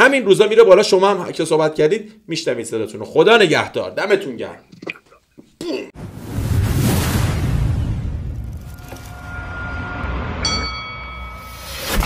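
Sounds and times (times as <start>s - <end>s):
low rumble: 6.0s - 10.5s
bell-like metallic chime: 9.1s - 12.0s
held ringing tone: 9.4s - 11.8s.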